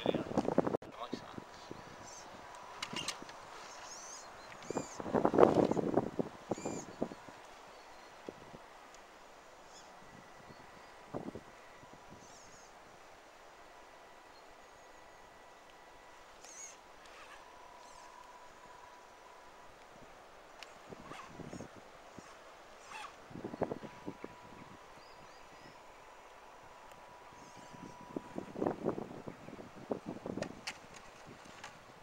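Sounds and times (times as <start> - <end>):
birds chirping: 1.0 - 29.9
rc crawler tyres scrabbling on soil: 16.5 - 18.0.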